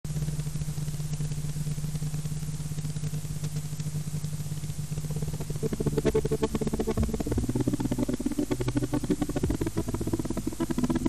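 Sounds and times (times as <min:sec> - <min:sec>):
tape hiss: 0:00.0 - 0:11.0
low hum: 0:00.1 - 0:11.0.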